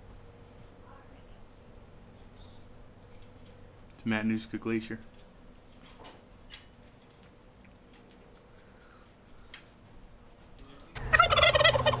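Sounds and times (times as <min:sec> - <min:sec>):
turkey gobbling: 0:11.0 - 0:12.0.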